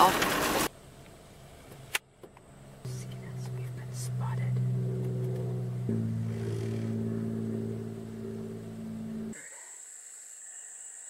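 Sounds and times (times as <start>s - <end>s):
car engine idling: 0.8s - 9.4s.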